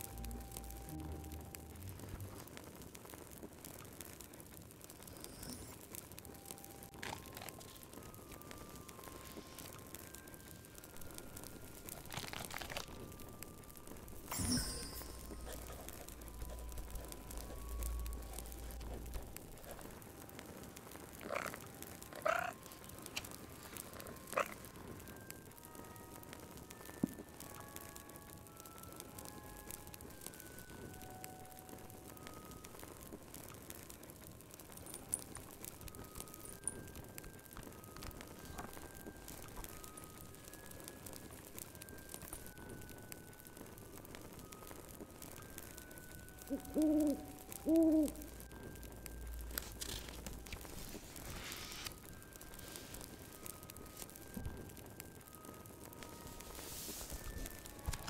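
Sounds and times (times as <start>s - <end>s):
soft single musical notes: 0.0s - 2.6s
faint crackling fire: 0.0s - 58.0s
frog croaking: 21.3s - 21.6s, 22.2s - 22.6s.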